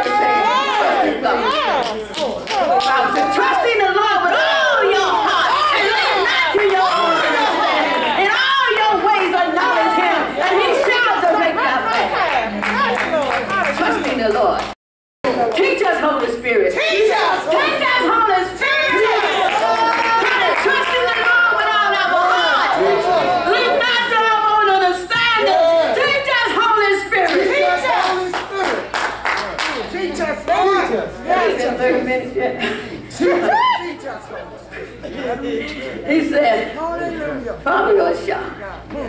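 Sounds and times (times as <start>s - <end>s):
hands clapping in rhythm: 1.4s - 3.3s, 11.9s - 16.4s, 27.2s - 30.6s
woman preaching: 2.6s - 22.8s, 23.4s - 28.4s.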